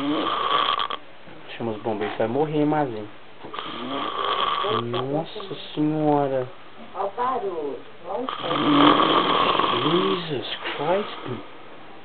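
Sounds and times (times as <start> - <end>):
man snoring loudly: 0.0 - 1.0, 3.6 - 5.1, 8.3 - 10.3.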